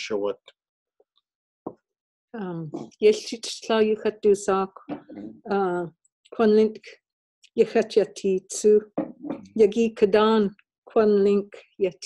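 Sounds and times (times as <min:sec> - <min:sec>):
person speaking: 0:04.9 - 0:06.6.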